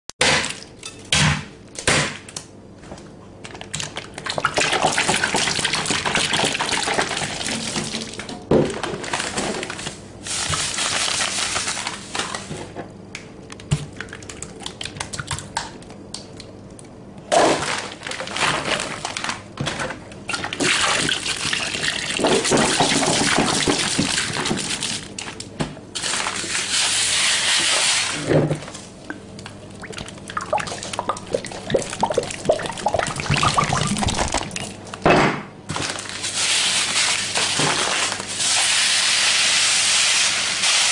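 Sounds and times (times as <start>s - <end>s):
liquid splashing in glass bowl: 29.8s - 34.8s.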